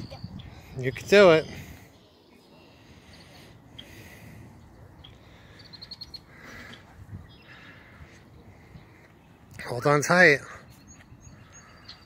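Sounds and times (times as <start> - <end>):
small bird chirping: 0.0 - 7.7
faint outdoor ambience: 0.0 - 12.0.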